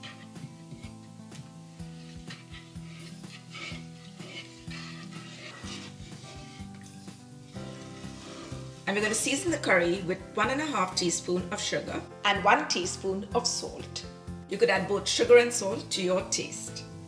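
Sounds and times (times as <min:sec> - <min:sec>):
wooden spatula stirring curry: 0:00.0 - 0:09.7.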